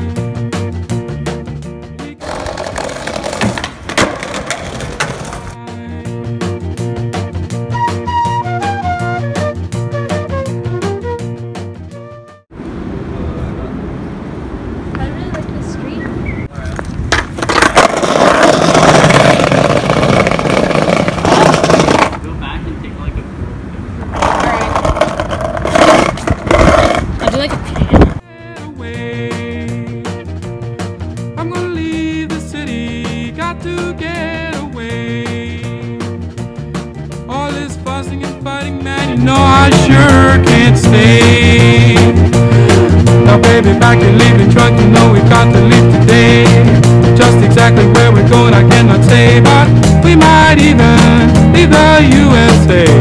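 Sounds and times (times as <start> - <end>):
skateboard knocks: 2.2 - 5.6, 16.7 - 22.2, 24.2 - 28.2
skateboard wheels rolling on stone: 2.2 - 5.6, 16.6 - 22.2, 24.0 - 28.2.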